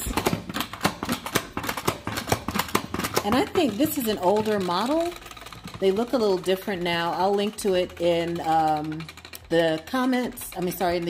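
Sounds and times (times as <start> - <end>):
salad spinner plastic clicks: 0.0 - 11.0.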